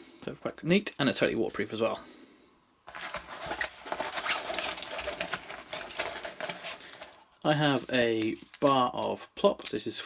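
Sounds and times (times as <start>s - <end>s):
wrapping crinkling: 2.9s - 10.0s.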